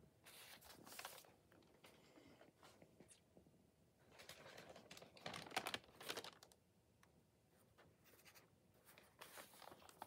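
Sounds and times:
paper rustling: 0:00.2 - 0:02.0, 0:04.1 - 0:06.6, 0:07.8 - 0:10.0.

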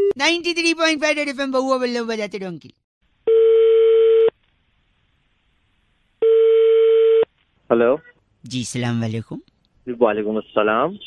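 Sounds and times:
telephone ringback tone: 0:03.3 - 0:04.3, 0:06.2 - 0:07.2
person speaking: 0:08.4 - 0:10.2.

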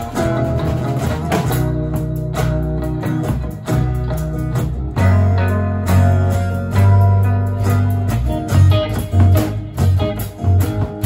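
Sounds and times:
acoustic and electric guitars: 0:00.0 - 0:11.0.

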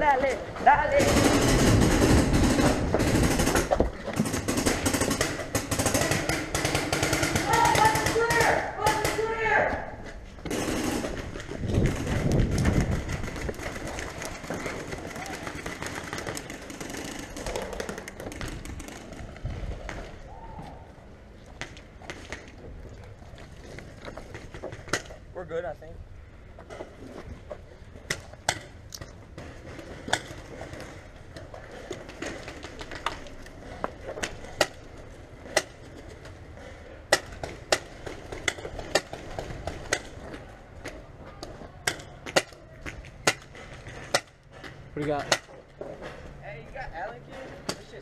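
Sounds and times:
people shouting: 0:07.3 - 0:10.0, 0:20.2 - 0:21.0.

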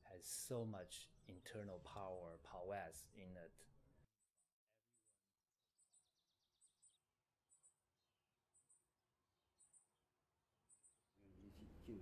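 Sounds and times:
very high chirps in pairs: 0:05.8 - 0:07.9.

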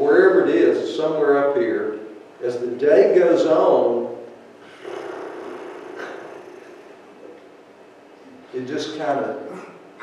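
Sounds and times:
person making drawn-out vocal sound: 0:04.6 - 0:07.0.

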